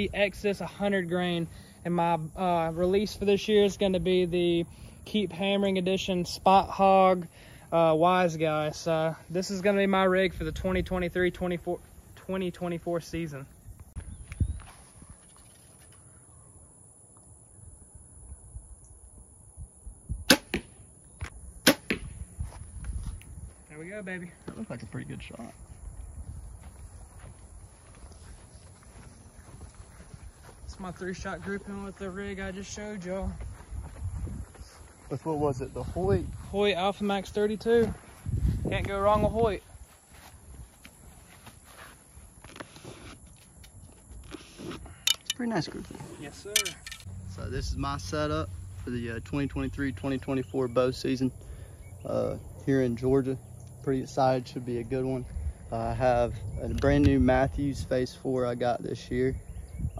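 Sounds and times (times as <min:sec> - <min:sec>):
taps and rustles of arrows: 0:13.8 - 0:16.1, 0:40.8 - 0:47.1
bow handling: 0:14.8 - 0:16.2, 0:42.4 - 0:47.1.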